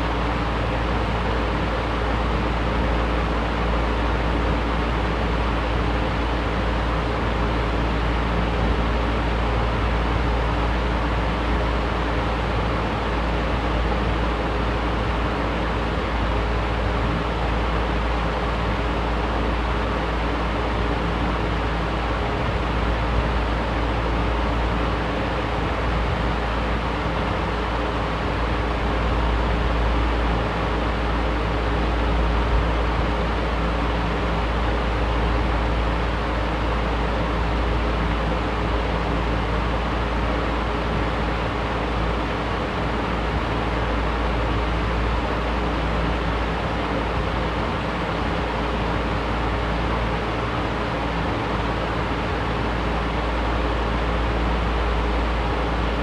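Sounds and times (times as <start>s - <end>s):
box fan running: 0.0s - 56.0s
faint steady hum: 0.0s - 56.0s.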